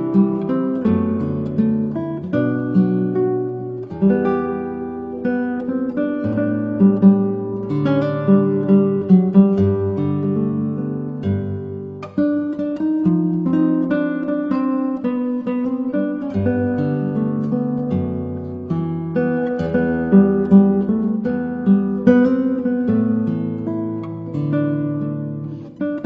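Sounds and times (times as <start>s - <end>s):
plucked guitar music: 0.0s - 26.0s.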